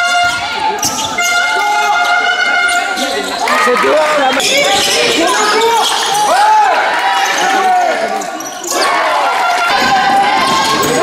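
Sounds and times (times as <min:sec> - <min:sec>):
sneakers squeaking: 0:00.0 - 0:11.0
voices echoing: 0:00.0 - 0:11.0.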